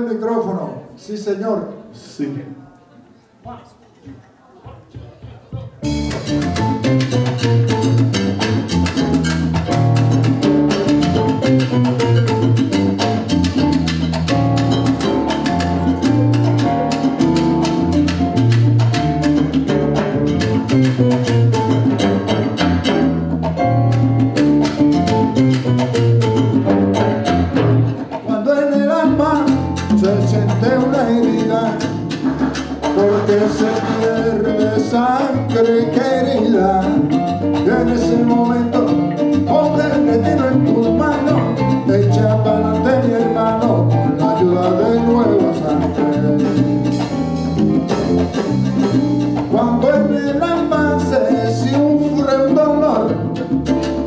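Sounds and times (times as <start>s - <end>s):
timbales and congas rhythm: 3.5s - 54.0s
electric bass line: 5.8s - 28.3s, 28.9s - 54.0s
keyboard playing: 5.8s - 54.0s.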